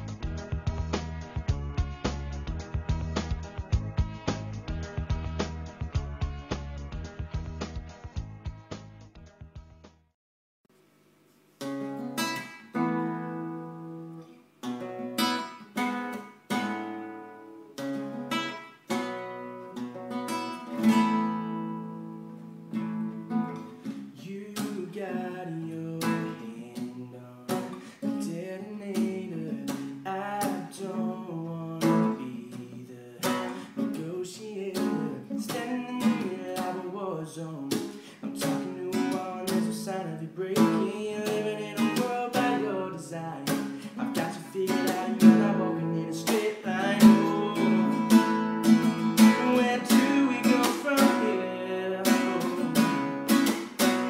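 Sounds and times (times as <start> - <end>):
acoustic guitar strumming: 0.0 - 8.6, 11.5 - 54.0
man singing: 24.2 - 48.4, 49.1 - 53.3.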